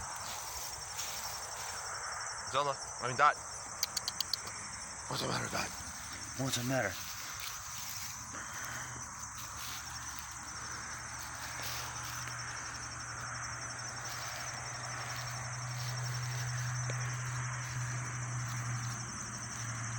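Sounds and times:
insects chirring in grass: 0:00.0 - 0:19.9.

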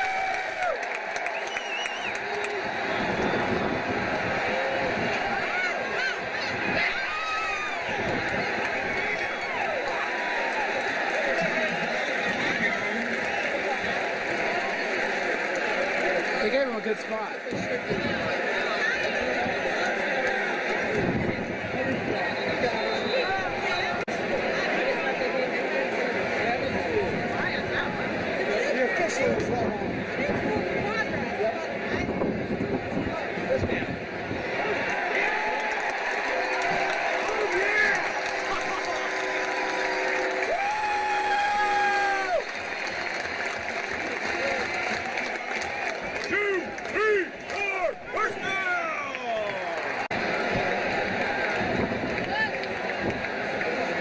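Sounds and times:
crowd talking and shouting: 0:00.0 - 0:54.0
loud shouts: 0:01.7 - 0:13.7, 0:45.6 - 0:50.0.

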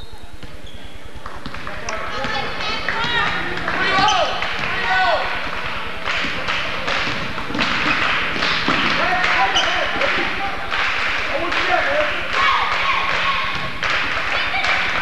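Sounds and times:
sneakers squeaking on floor: 0:00.0 - 0:01.2, 0:03.0 - 0:04.4, 0:08.5 - 0:10.0
crowd voices echoing: 0:01.6 - 0:15.0.

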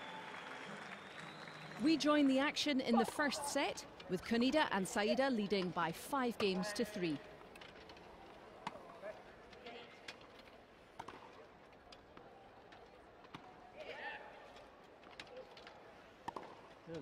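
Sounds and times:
tennis ball hit by rackets: 0:11.0 - 0:11.3, 0:16.2 - 0:16.7.

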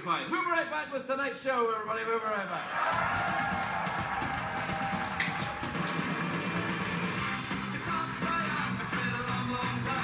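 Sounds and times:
band music with guitar: 0:04.2 - 0:10.0.

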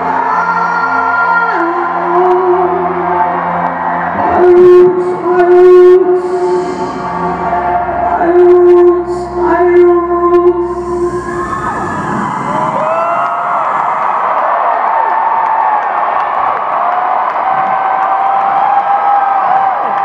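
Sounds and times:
crowd cheering and whistling: 0:00.0 - 0:08.2, 0:10.5 - 0:20.0.

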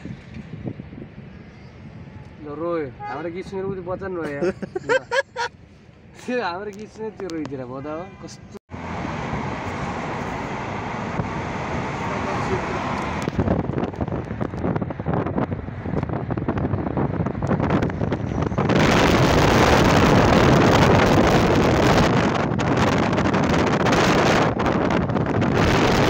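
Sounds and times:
wind buffeting microphone: 0:00.0 - 0:07.6, 0:08.8 - 0:26.0.

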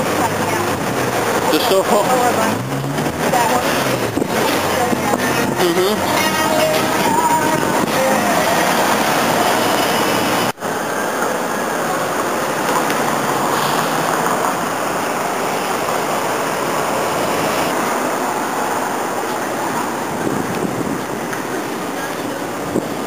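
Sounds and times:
passing traffic: 0:00.0 - 0:23.0
wind on microphone: 0:02.6 - 0:10.5, 0:19.8 - 0:23.0.

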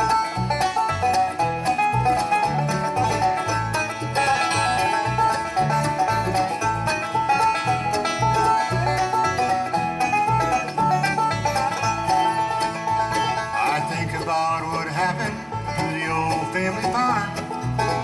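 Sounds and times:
banjo picking: 0:00.0 - 0:18.0
bass notes: 0:00.0 - 0:18.0
strummed guitar: 0:00.0 - 0:18.0.

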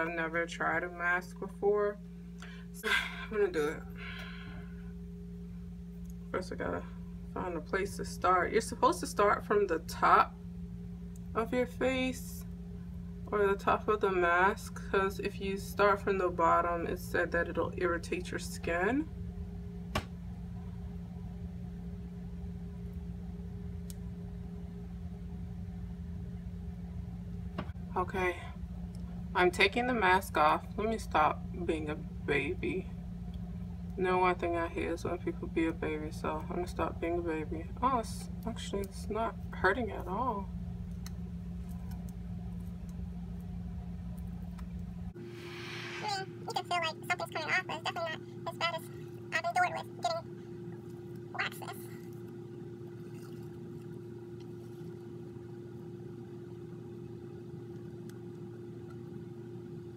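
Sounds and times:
low hum of fan or appliance: 0:00.0 - 0:59.9
brief hiss: 0:45.3 - 0:46.4
fast high-pitched chattering speech: 0:51.4 - 0:51.9.

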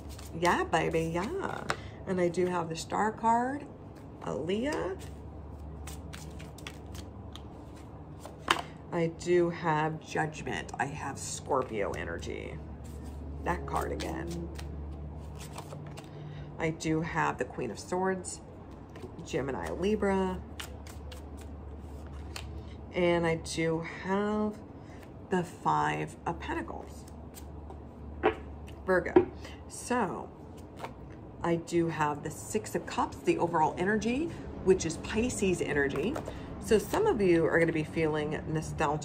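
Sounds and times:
cards being shuffled: 0:00.0 - 0:02.6, 0:03.9 - 0:08.7, 0:11.6 - 0:16.2, 0:18.7 - 0:22.7, 0:26.8 - 0:28.8, 0:30.5 - 0:31.1
cards snapping and sliding: 0:05.8 - 0:07.5, 0:13.8 - 0:16.1, 0:20.6 - 0:22.6.

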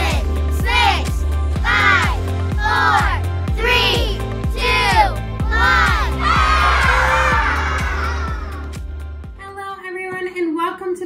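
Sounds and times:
upbeat intro music: 0:00.0 - 0:09.4
crowd cheering: 0:05.4 - 0:08.9.

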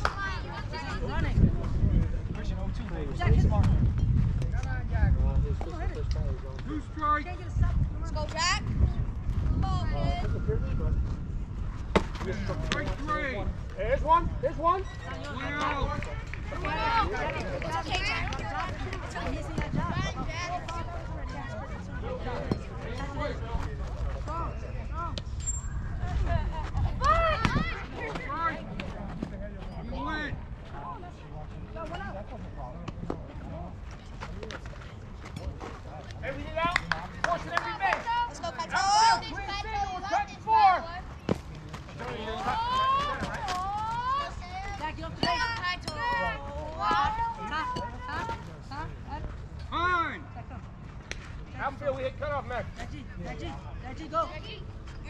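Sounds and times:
wind rumble on microphone: 0:00.4 - 0:15.1, 0:15.7 - 0:20.9, 0:25.1 - 0:29.3
people calling out and chattering: 0:05.5 - 0:34.4, 0:35.0 - 0:55.0
people shouting and calling: 0:42.1 - 0:48.4.

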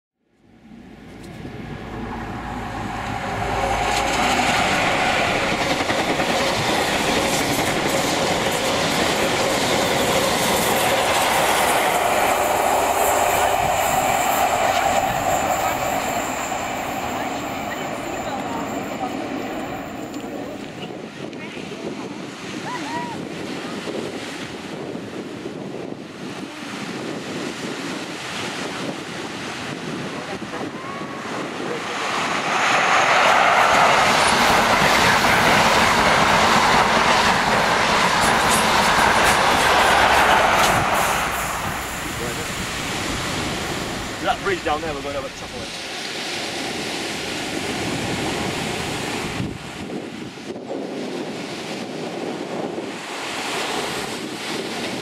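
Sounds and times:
train passing at speed: 0:00.4 - 0:22.5, 0:23.2 - 0:55.0
train wheels on rails: 0:01.0 - 0:21.0, 0:31.8 - 0:55.0.

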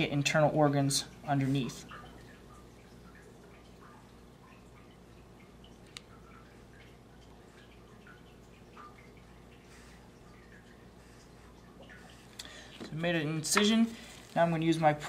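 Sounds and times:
quiet low hum: 0:00.0 - 0:15.0.

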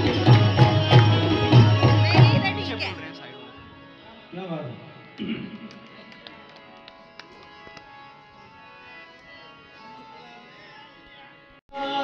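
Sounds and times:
harmonium sustained notes: 0:00.0 - 0:12.0.

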